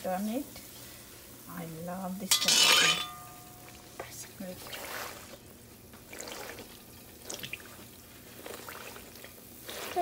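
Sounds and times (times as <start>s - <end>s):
dough frying in hot oil: 0.0s - 10.0s.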